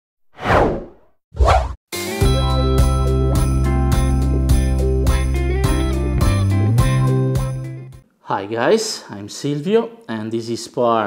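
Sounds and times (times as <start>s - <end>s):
music: 1.9s - 8.0s.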